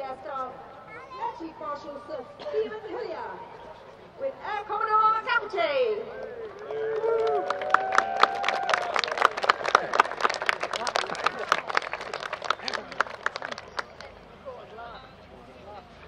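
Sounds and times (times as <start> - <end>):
group clapping: 6.2 - 14.2.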